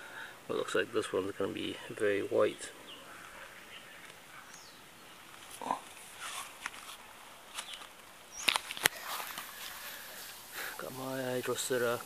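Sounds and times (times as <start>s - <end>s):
footsteps outdoors: 0.6s - 12.0s
handling rustle: 3.2s - 12.0s.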